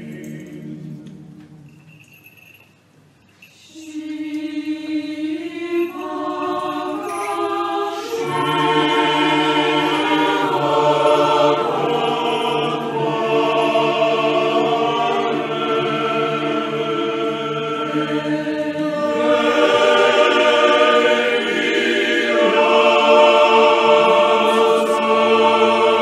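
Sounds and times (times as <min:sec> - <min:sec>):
choir singing chant-like music: 0:00.0 - 0:01.5, 0:03.7 - 0:26.0.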